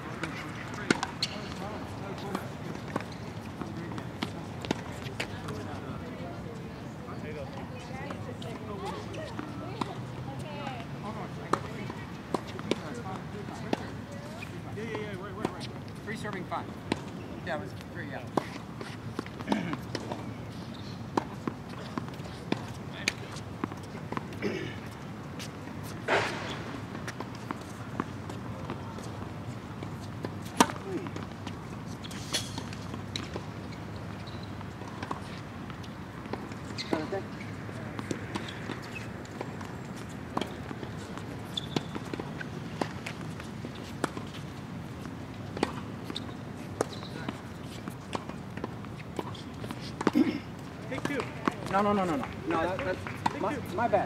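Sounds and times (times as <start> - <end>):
low background noise: 0.0 - 54.0
tennis balls struck by rackets: 0.1 - 5.7, 11.5 - 20.4, 21.1 - 54.0
balls bouncing on hard court: 0.1 - 5.8, 26.1 - 54.0.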